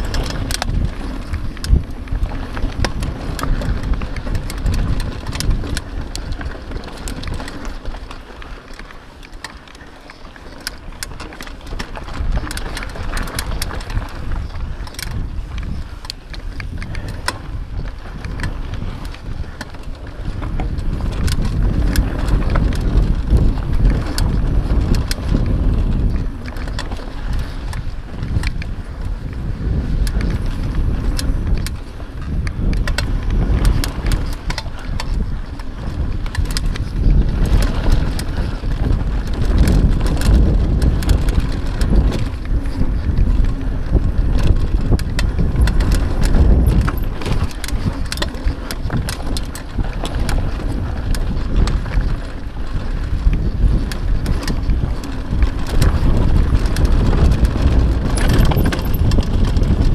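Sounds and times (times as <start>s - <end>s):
bike rattling over bumps: 0.0s - 59.9s
tyres rumbling on dirt: 0.0s - 59.9s
wind on microphone: 0.0s - 59.9s.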